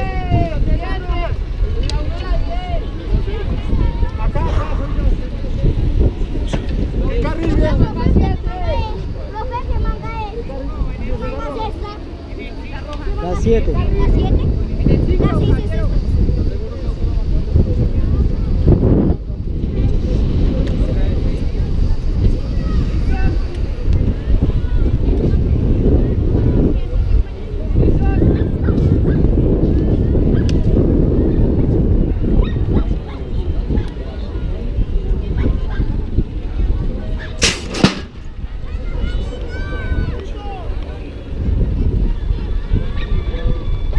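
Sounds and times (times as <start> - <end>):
people talking faintly: 0.0 - 43.9
wind buffeting microphone: 0.0 - 43.9
start gate banging flat: 37.4 - 38.5.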